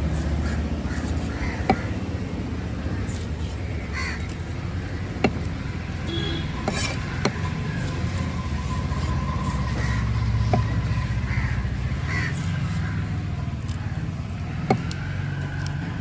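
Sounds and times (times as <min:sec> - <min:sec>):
cleaver chopping on wooden block: 0:01.0 - 0:02.0, 0:05.2 - 0:05.5, 0:06.6 - 0:07.4, 0:14.6 - 0:15.0.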